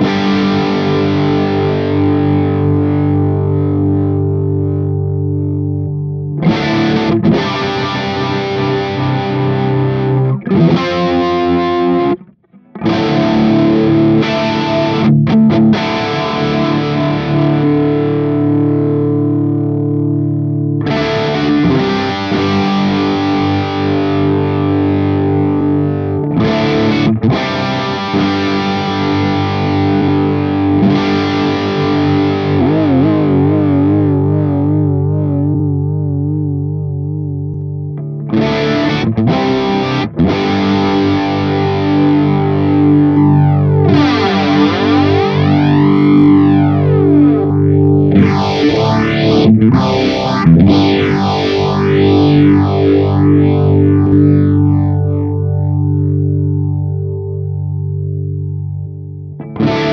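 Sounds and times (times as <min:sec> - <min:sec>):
electric guitar with effects: 0:00.0 - 0:59.9.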